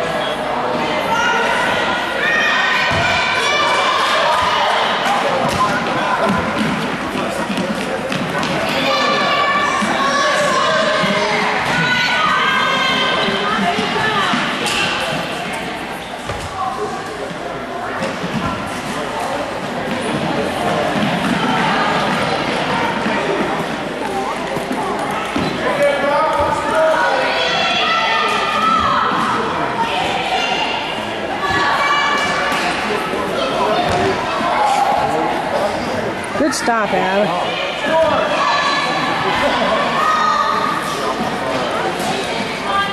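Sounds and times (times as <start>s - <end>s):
voices of children and onlookers: 0.0s - 42.9s.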